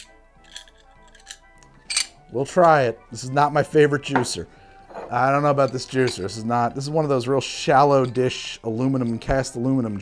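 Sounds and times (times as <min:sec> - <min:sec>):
metal bar tools clinking: 0:00.0 - 0:02.9, 0:04.1 - 0:06.4, 0:07.9 - 0:09.4
soft background music: 0:00.0 - 0:10.0.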